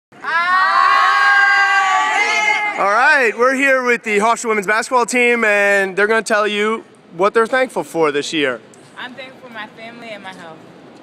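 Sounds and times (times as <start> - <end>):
women cheering together: 0.2 - 2.8.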